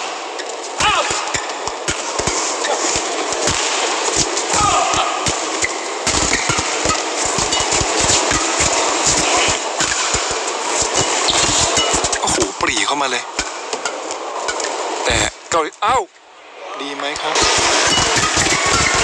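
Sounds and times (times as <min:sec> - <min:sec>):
shoes squeaking on court: 0:00.0 - 0:04.5, 0:05.4 - 0:12.2
arena crowd noise: 0:00.0 - 0:11.4, 0:12.1 - 0:19.0
rackets hitting shuttlecock: 0:00.0 - 0:12.4, 0:13.3 - 0:15.0, 0:17.4 - 0:19.0.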